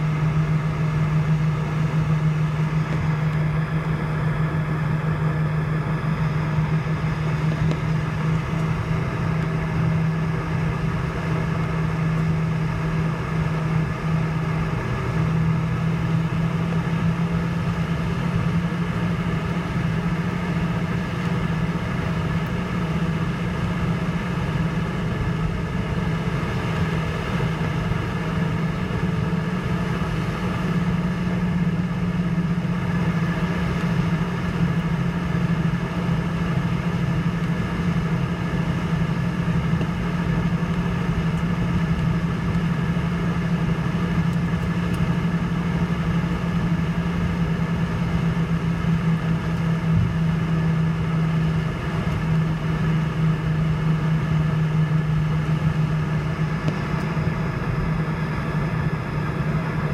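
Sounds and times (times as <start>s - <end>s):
jet engines droning in cabin: 0.0s - 59.9s.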